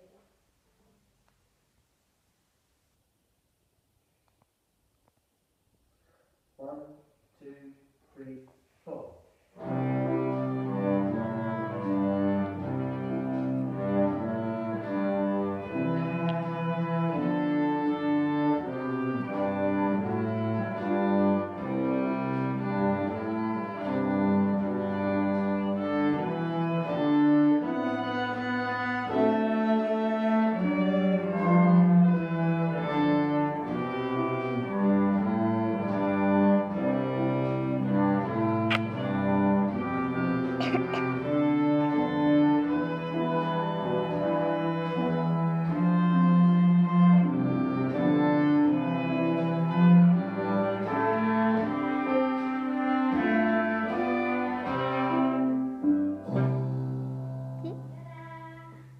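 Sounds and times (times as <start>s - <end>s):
cello: 9.6s - 58.9s
violin: 9.6s - 58.9s.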